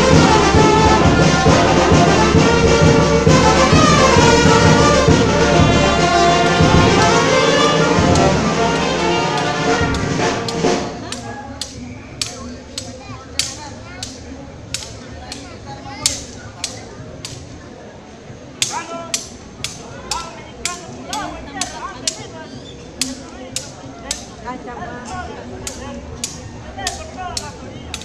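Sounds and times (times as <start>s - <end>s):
brass band music: 0.0s - 11.1s
low crowd voices: 0.0s - 28.0s
sharp clacks: 9.4s - 17.5s, 25.6s - 28.0s.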